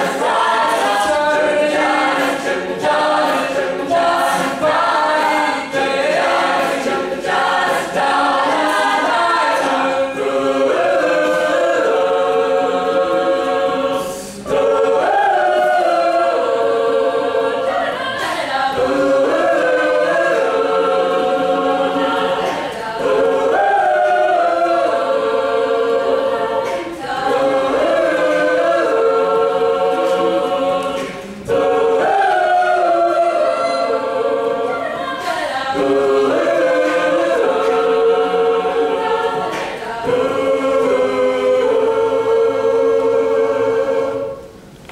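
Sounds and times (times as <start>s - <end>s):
a cappella group singing: 0.0s - 44.9s.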